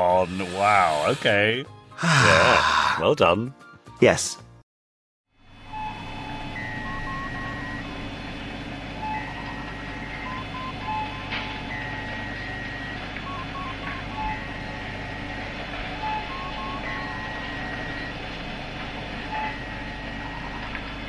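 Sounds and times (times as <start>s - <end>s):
low electronic hum: 5.4s - 21.0s.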